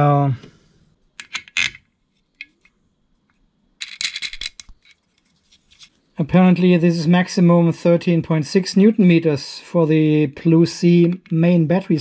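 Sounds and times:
small metal parts clinking: 0:03.8 - 0:05.6.

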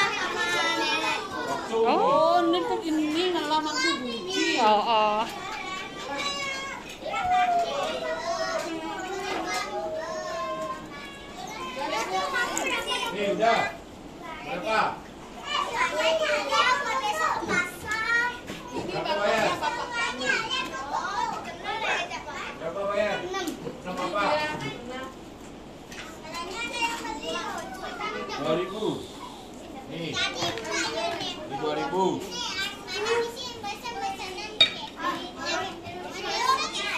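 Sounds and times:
children chattering and calling out: 0:00.0 - 0:36.9.

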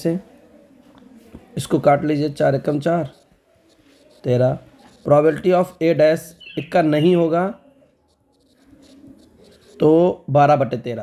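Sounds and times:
stylus scratching on tablet: 0:01.6 - 0:10.3.

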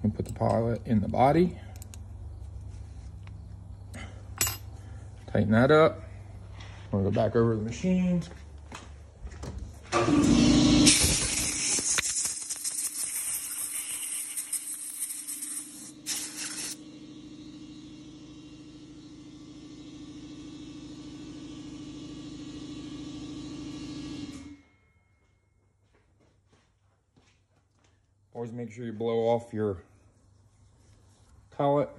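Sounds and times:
motor hum: 0:08.5 - 0:11.8, 0:15.3 - 0:24.7
compressed air blow gun hissing: 0:10.9 - 0:16.8.

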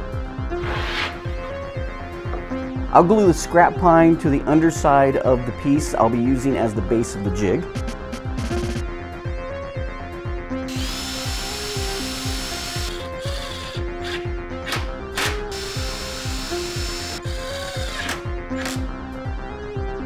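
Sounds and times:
music with steady beat: 0:00.0 - 0:04.9, 0:07.4 - 0:20.0
impact driver whining: 0:10.7 - 0:13.8, 0:15.5 - 0:18.2.

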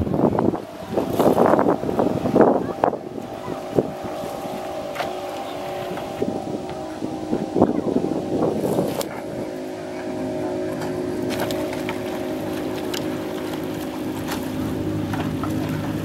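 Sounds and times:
boat engine humming: 0:00.0 - 0:16.0.

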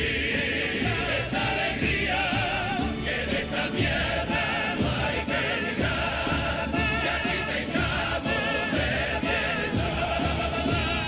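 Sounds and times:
men's choir singing with vibrato: 0:00.0 - 0:11.0.

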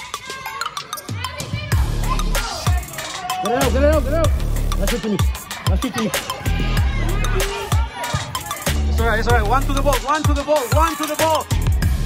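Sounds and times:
trap music: 0:00.0 - 0:12.0.

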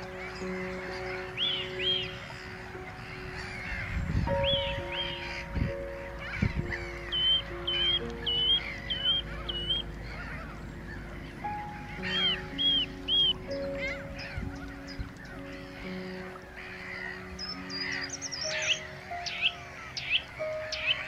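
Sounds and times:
background music sustained chords: 0:00.0 - 0:21.0
gulls calling: 0:00.0 - 0:21.0.

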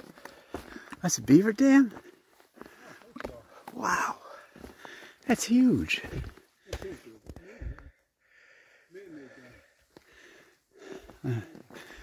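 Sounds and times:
footsteps on dirt trail: 0:00.0 - 0:08.1, 0:09.3 - 0:12.0.

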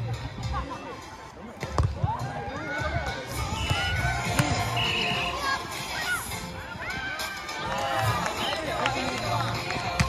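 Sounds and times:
players calling: 0:02.7 - 0:10.0.

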